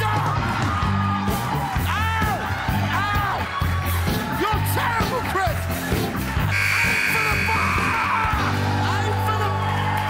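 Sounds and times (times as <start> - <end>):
band music: 0.0 - 10.0.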